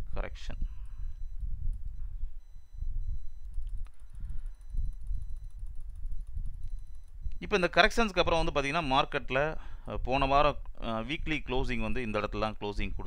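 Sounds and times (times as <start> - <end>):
faint high electronic tones: 0.2 - 9.3.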